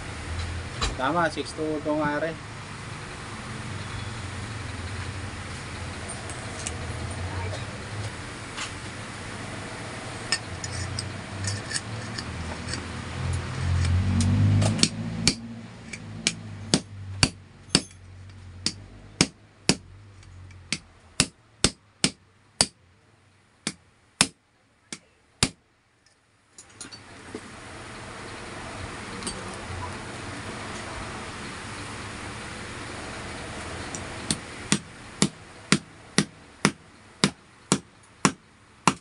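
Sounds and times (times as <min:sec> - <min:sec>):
small metal clinks: 0:17.6 - 0:18.4.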